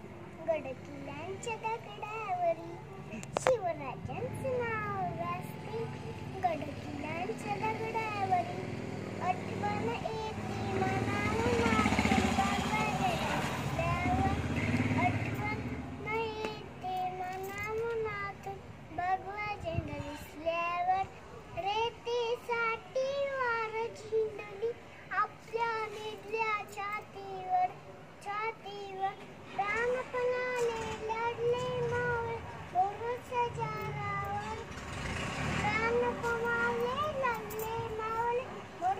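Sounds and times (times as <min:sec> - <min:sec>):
vehicle passing: 0:00.0 - 0:27.6, 0:28.9 - 0:38.9
girl singing: 0:00.0 - 0:38.9.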